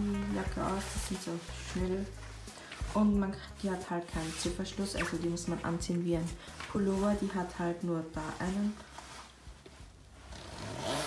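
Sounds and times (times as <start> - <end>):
jacket rustling: 0.0 - 11.0
zipper rasping: 10.2 - 11.0.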